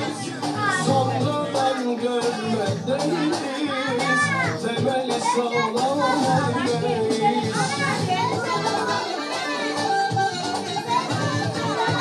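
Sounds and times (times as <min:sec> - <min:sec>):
background music: 0:00.0 - 0:12.0
children chattering: 0:00.0 - 0:12.0.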